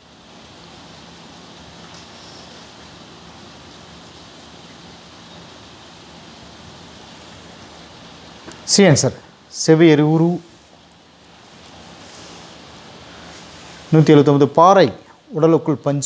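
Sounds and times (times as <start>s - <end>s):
steady background hiss: 0.0s - 16.0s.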